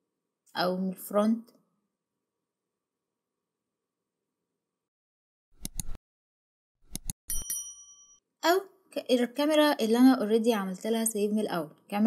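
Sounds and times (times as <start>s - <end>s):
click sound effects: 6.9s - 7.5s
bright bell ding: 7.3s - 8.2s.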